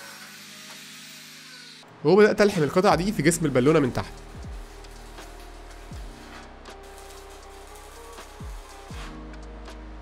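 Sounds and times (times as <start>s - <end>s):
angle grinder cutting steel: 0.0s - 1.8s, 3.2s - 9.1s.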